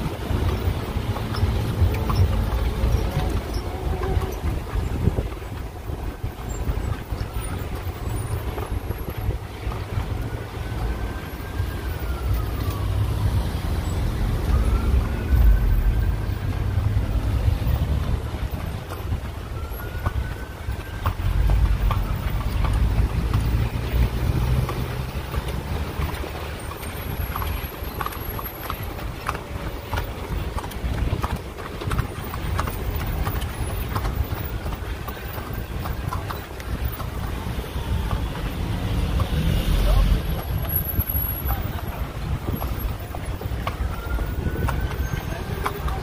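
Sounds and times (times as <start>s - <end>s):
horse hooves clip-clopping on pavement: 0.0s - 46.0s
low rumble of traffic: 0.0s - 46.0s.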